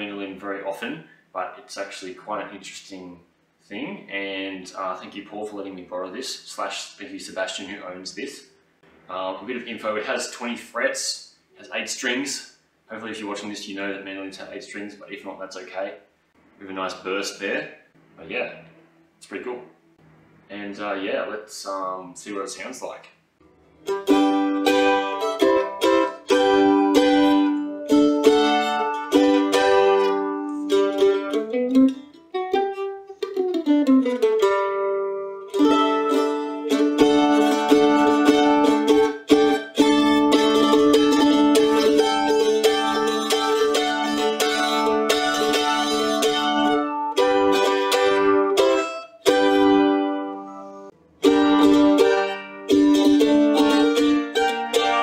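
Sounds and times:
mandolin picking: 23.4 - 55.0.

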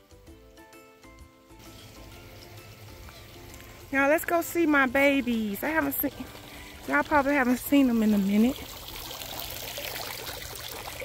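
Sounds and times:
soft melodic music: 0.0 - 10.0
fountain water running: 1.6 - 11.0.

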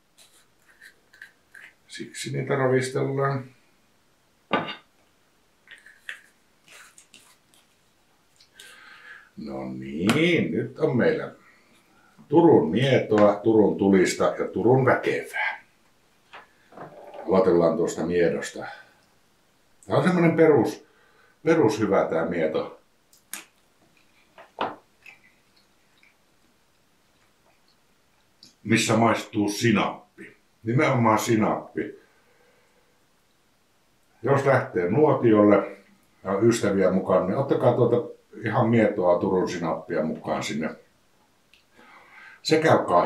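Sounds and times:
man chewing with mouth smacks: 25.0 - 28.5.

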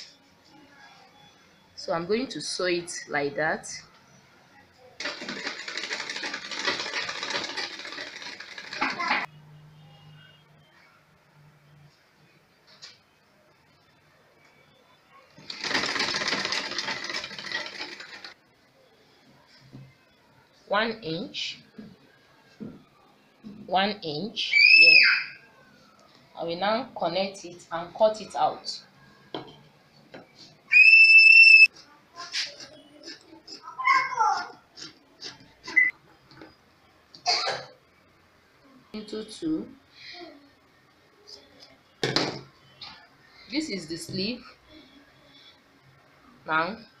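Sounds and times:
sewing machine stitching: 5.0 - 9.2, 15.4 - 18.4.

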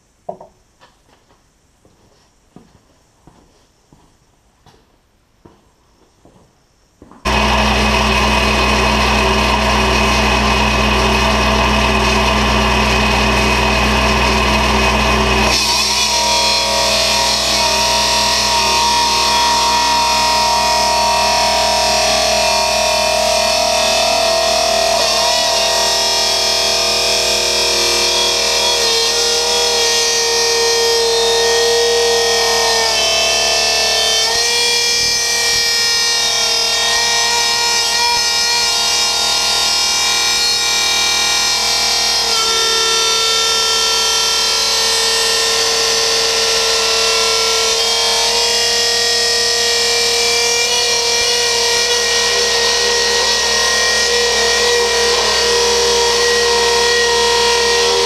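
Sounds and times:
blade grinding through hose: 7.3 - 58.0
hydraulic cutter humming: 7.3 - 58.0.

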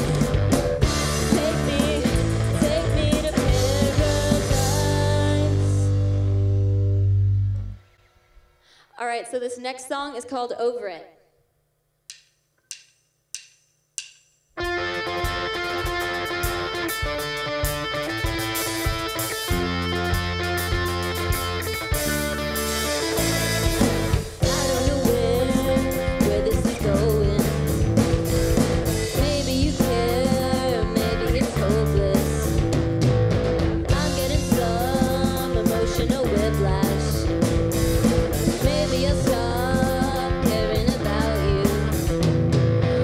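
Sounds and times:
rock band playing: 0.0 - 7.8, 14.6 - 43.0
woman singing: 1.2 - 5.9, 24.4 - 27.7, 29.1 - 32.6, 33.9 - 37.3, 38.4 - 42.1.

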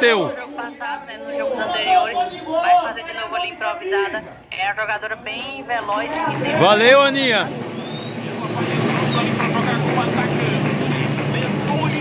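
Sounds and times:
woman's voice: 3.0 - 6.4
voices calling out: 5.2 - 12.0.

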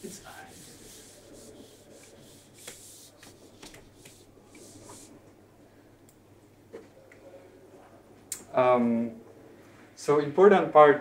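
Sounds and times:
marker rubbing on whiteboard: 0.0 - 5.1
marker tap: 2.0 - 4.7.

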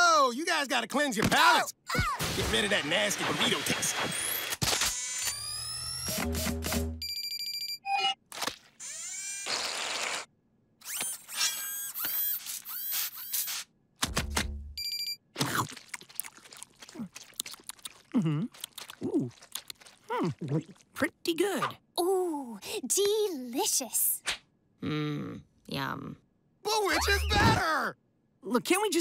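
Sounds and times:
cartoon music: 26.9 - 27.6
electronic rising whistles: 27.0 - 27.4.

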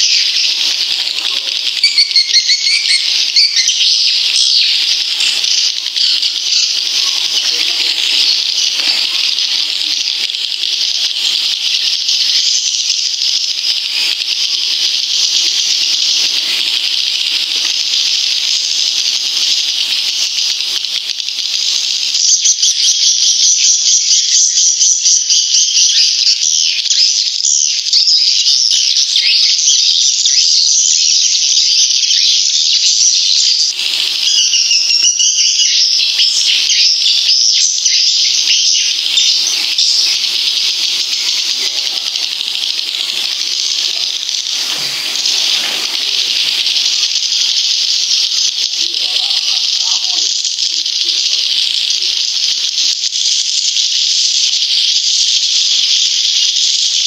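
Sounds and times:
high-pitched chattering bird chirps: 0.0 - 57.0.

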